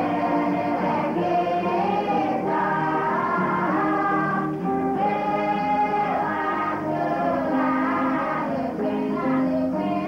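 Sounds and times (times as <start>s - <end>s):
choir singing long notes: 0.0s - 10.0s.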